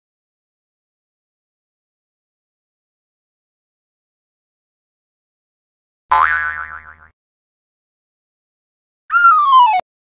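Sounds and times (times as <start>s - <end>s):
cartoon boing sound effect: 6.1s - 7.1s.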